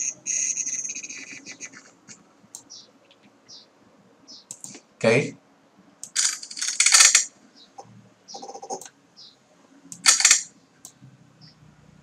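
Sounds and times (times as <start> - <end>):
keyboard and mouse clicking: 1.0 - 3.4, 4.5 - 4.8, 8.4 - 9.0.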